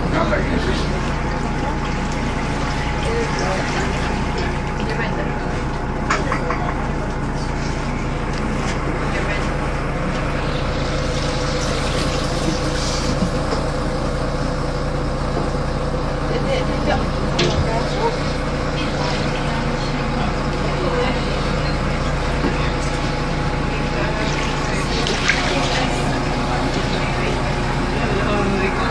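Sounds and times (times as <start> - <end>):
water sloshing: 0.0 - 14.4, 22.5 - 28.8
passengers' voices: 16.3 - 28.9.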